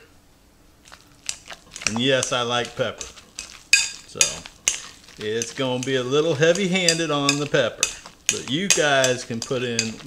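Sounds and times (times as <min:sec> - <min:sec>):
fork mashing potatoes in a bowl: 0:00.8 - 0:10.0
fork scraping and tapping bowl: 0:00.9 - 0:10.0.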